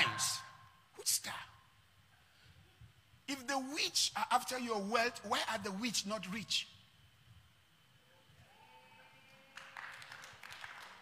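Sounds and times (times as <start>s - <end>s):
faint steady hum: 0.0s - 11.0s
audience clapping: 9.5s - 11.0s.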